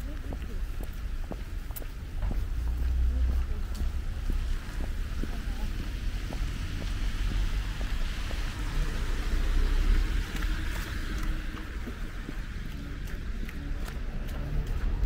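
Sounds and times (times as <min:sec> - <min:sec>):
footsteps on pavement: 0:00.0 - 0:15.0
low traffic rumble: 0:00.0 - 0:15.0
tyres hissing on wet road: 0:02.4 - 0:13.0.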